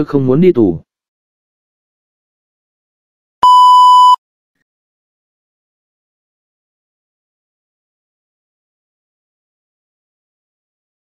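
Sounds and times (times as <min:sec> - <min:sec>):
loud electronic beep: 0:03.4 - 0:04.2.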